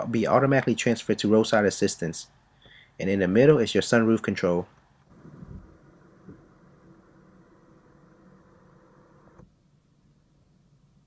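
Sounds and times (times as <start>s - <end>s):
sunroof motor whirring: 5.1s - 9.5s.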